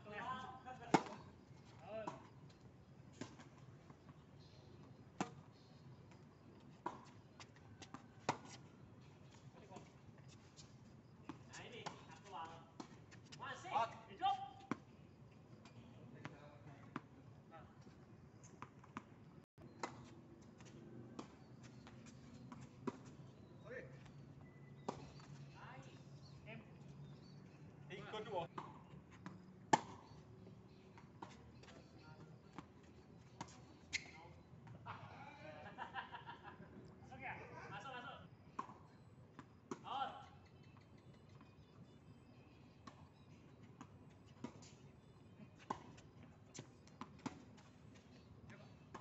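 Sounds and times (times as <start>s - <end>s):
racket hitting tennis ball: 29.7s - 30.0s.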